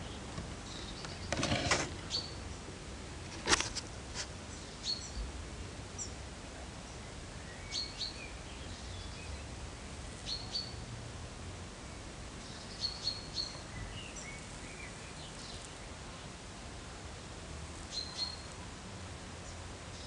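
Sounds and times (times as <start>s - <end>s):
small bird chirping: 0.0s - 2.6s, 4.5s - 5.3s, 6.9s - 9.5s, 10.2s - 10.8s, 12.4s - 15.9s, 17.9s - 18.6s
steady outdoor hiss: 0.0s - 20.0s.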